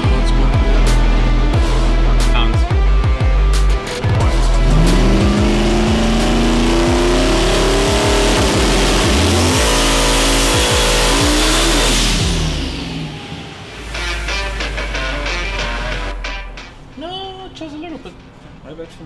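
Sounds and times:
background music: 0:00.0 - 0:18.4
engine revving at full throttle: 0:04.2 - 0:15.2.

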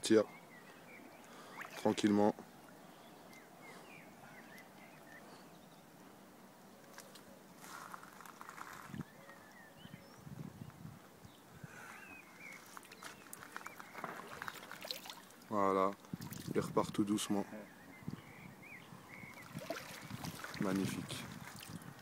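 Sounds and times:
shallow water sloshing: 0:01.4 - 0:02.1, 0:12.6 - 0:16.6, 0:19.2 - 0:22.0
faint bird chirps: 0:02.7 - 0:05.9, 0:08.5 - 0:10.4, 0:11.2 - 0:15.3, 0:17.4 - 0:20.6.

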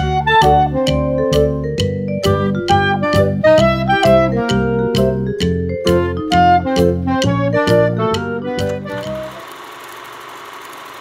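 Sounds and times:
keyboard music: 0:00.0 - 0:09.5
film projector clattering: 0:08.7 - 0:11.0.

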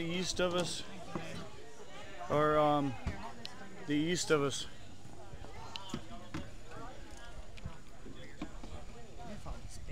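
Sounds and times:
people chattering: 0:00.0 - 0:09.9.

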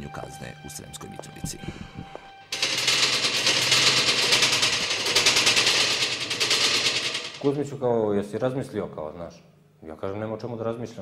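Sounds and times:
fast rattle of sharp clicks: 0:02.6 - 0:07.5.

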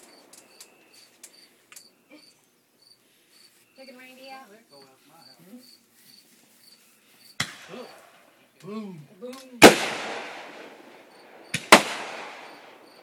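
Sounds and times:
cricket chirping: 0:00.0 - 0:08.3, 0:10.4 - 0:13.0
faint firework pops: 0:07.4 - 0:08.0.

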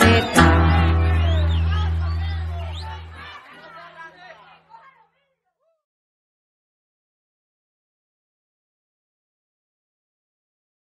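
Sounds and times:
voices chattering: 0:00.0 - 0:05.5.

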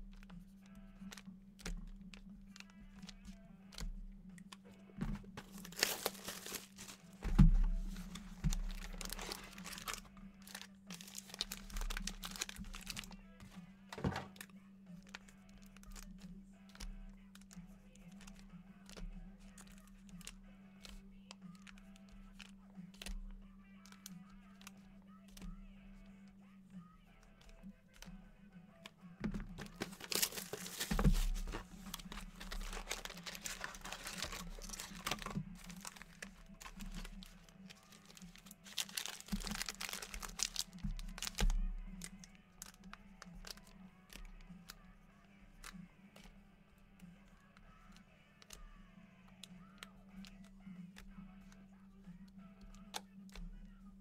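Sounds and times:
quiet background music: 0:00.0 - 0:54.0
card pack wrappers crinkling: 0:05.2 - 0:16.1, 0:29.2 - 0:44.8.

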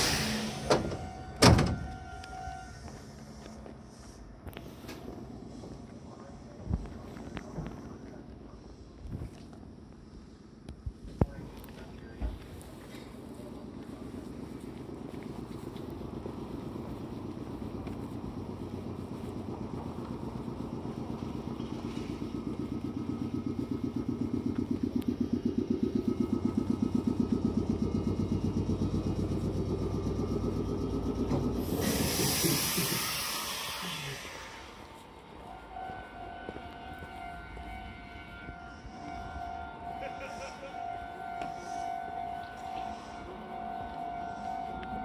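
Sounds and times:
hiss of released air: 0:00.0 - 0:00.9, 0:31.6 - 0:34.9.

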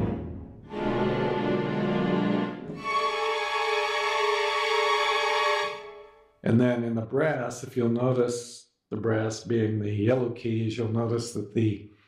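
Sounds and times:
orchestral string effects: 0:00.0 - 0:06.3.

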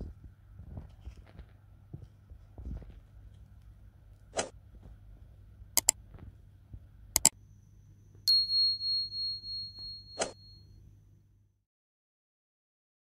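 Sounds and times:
sharp clicks: 0:07.2 - 0:07.4
bright bell ding: 0:08.3 - 0:10.8.

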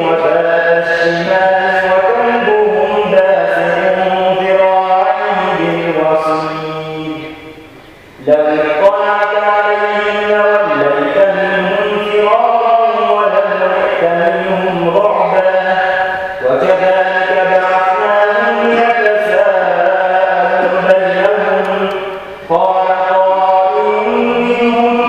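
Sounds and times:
man chanting melodically: 0:00.0 - 0:25.0.

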